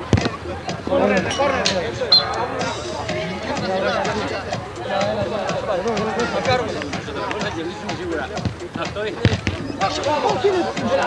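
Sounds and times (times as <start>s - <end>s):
voices shouting: 0.0s - 11.0s.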